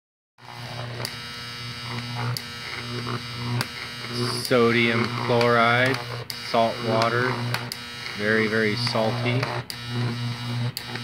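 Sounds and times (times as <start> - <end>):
electrical hum and buzz: 0.4 - 11.0.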